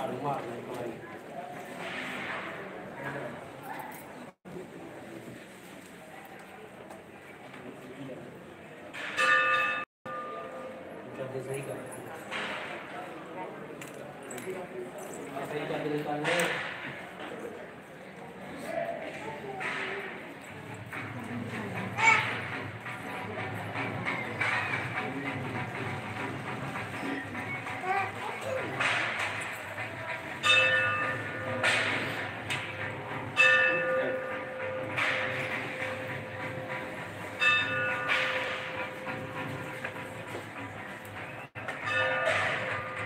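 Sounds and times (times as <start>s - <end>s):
metal bell ringing: 30.3s - 40.3s, 41.6s - 43.0s.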